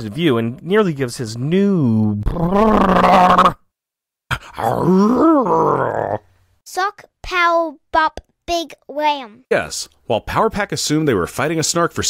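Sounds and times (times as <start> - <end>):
person groaning: 2.1 - 3.6, 4.3 - 6.3
vocal sound rising and falling: 2.1 - 3.6, 4.5 - 6.3.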